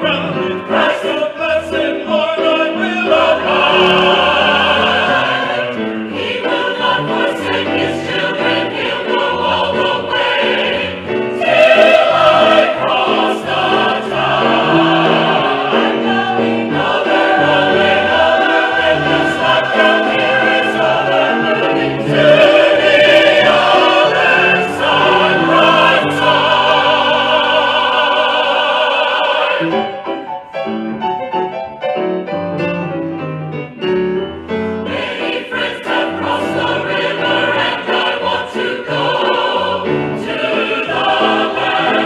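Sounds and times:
mixed choir singing gospel: 0.0s - 30.2s, 34.8s - 42.0s
piano accompaniment: 0.0s - 42.0s.

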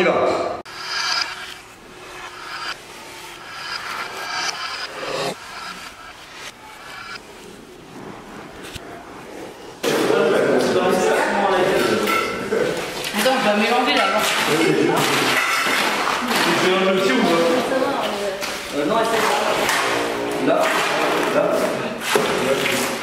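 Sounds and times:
people talking: 9.9s - 15.4s, 16.2s - 23.0s.

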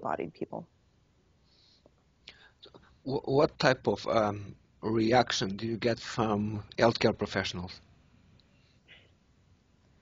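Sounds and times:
faint breath sounds: 1.4s - 3.1s, 8.5s - 9.2s.

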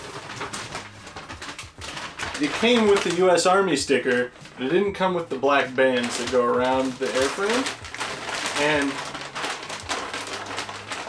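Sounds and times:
bag rustling: 0.0s - 11.0s.

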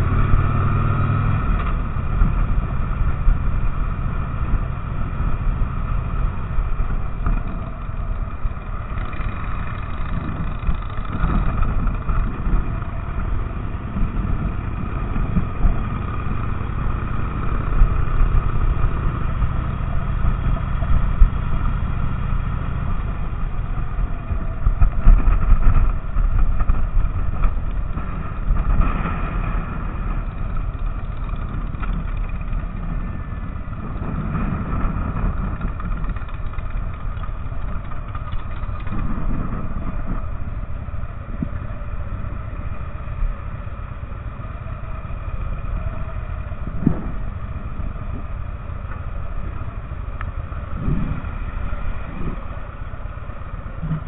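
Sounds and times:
motorcycle engines running slowly: 0.0s - 54.0s.

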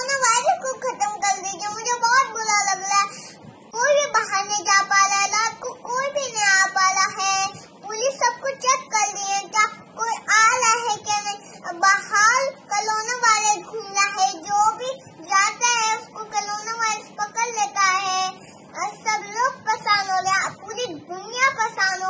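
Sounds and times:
girl chanting a prayer: 0.0s - 22.0s.

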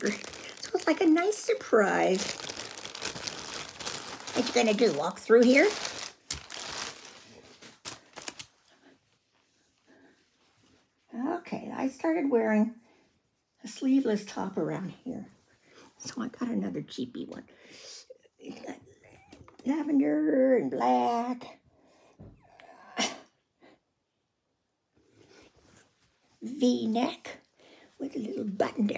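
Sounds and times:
plastic bag crinkling: 0.0s - 8.6s.

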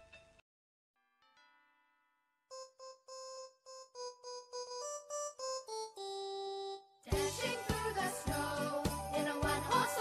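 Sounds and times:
electronic keyboard melody: 1.2s - 10.0s.

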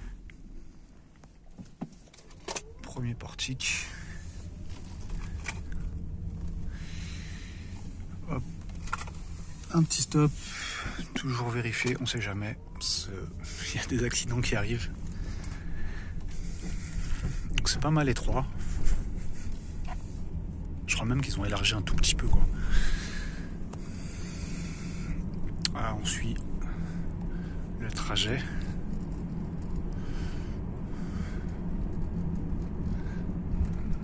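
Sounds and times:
car cabin low rumble: 0.0s - 34.0s.

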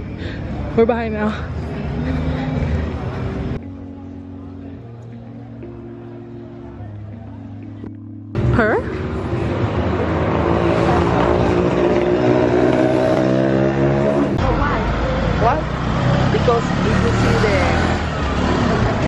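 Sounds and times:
street noise: 0.0s - 19.0s.

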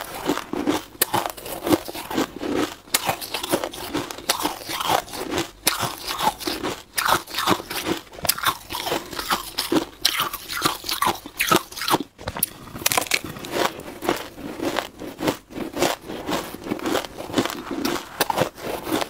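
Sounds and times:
chewing crunches: 0.0s - 19.0s
frost crunching: 8.3s - 15.6s.

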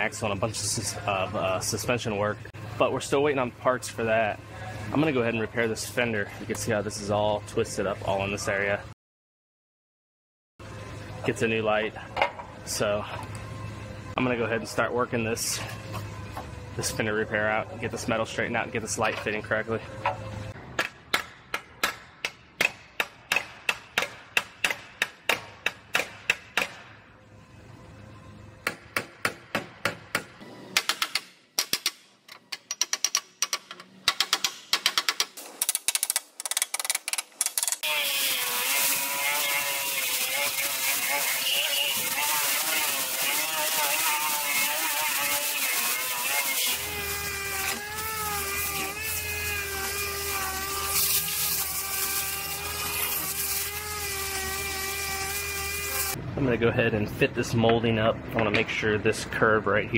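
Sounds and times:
air sander humming: 37.8s - 56.2s
disc grinder whining: 37.8s - 56.2s.

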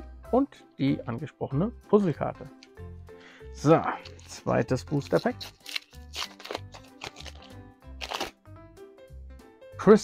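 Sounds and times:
foil pack tearing: 4.0s - 8.4s.

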